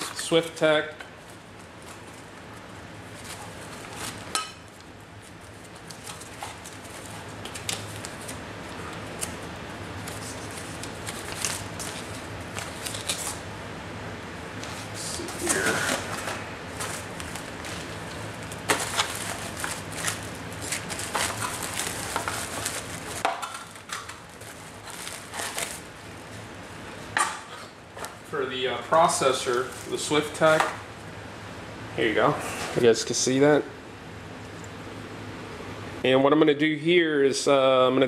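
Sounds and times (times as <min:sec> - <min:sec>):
steady low hum: 0:00.0 - 0:38.0
packaging rustling and crinkling: 0:05.2 - 0:13.5, 0:14.6 - 0:26.5.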